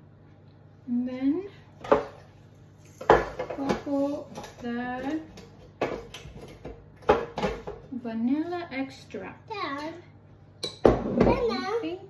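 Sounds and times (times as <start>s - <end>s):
kitchenware knocks: 3.0s - 4.6s, 5.8s - 7.9s, 10.6s - 11.5s.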